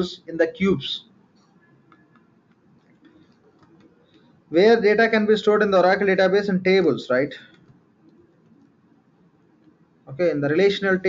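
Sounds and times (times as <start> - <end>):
keyboard typing clicks: 1.8 - 4.3, 7.4 - 8.8.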